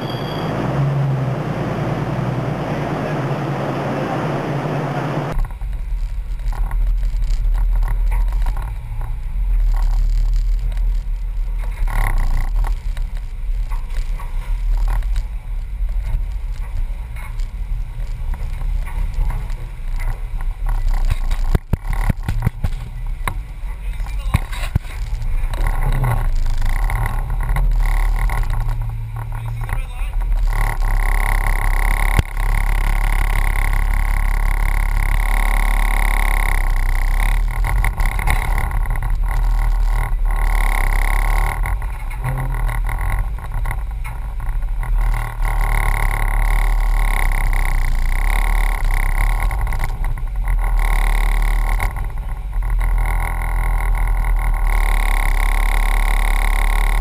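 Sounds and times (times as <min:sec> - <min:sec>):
car engine running: 0:00.0 - 0:57.0.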